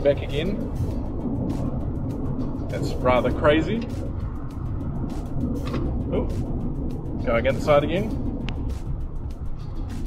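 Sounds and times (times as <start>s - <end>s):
road and tyre noise in car cabin: 0.0s - 10.0s.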